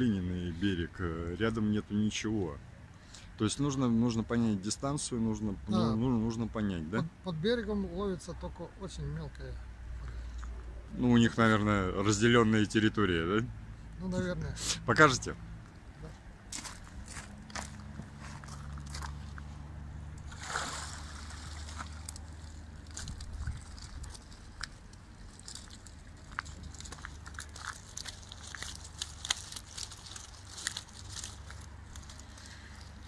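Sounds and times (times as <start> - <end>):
water sloshing and splashing: 20.2 - 32.2.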